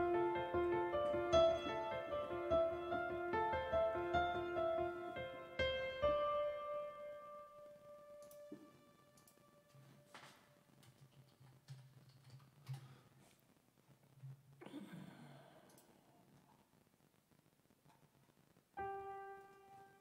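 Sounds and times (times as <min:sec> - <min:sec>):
faint clicks: 0:08.2 - 0:13.5, 0:15.6 - 0:18.6.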